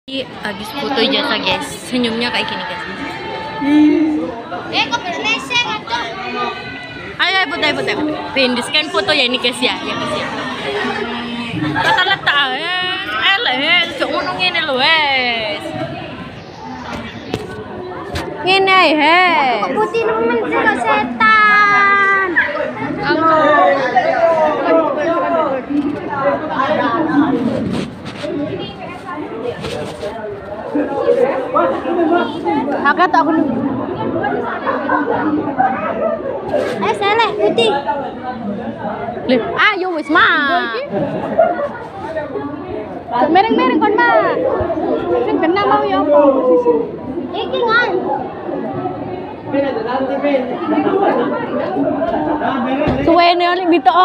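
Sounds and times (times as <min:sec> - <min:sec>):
voices talking and calling out: 0:00.1 - 0:54.0.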